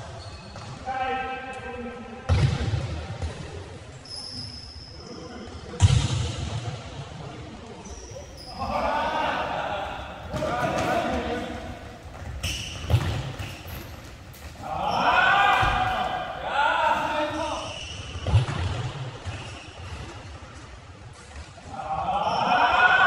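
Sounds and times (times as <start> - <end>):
players shouting in gymnasium: 7.8 - 18.6, 21.6 - 23.0.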